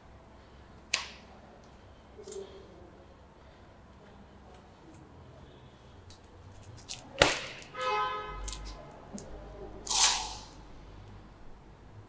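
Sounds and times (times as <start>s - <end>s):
sharp snap of gym machine: 9.9s - 10.5s
loud swish: 9.9s - 10.6s.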